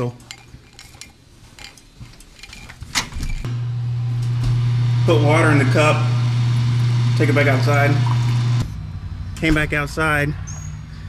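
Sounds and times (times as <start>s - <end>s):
water dispenser humming: 3.4s - 8.7s.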